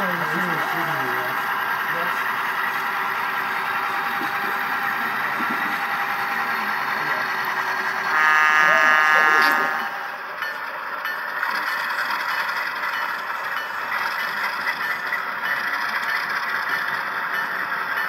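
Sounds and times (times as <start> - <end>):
model train rolling clatter: 0.0 - 8.2, 9.2 - 18.0
model train horn blast: 7.9 - 10.2.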